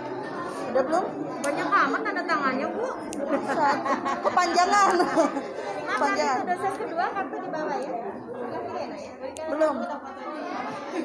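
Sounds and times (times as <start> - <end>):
voices chattering: 0.0 - 11.0.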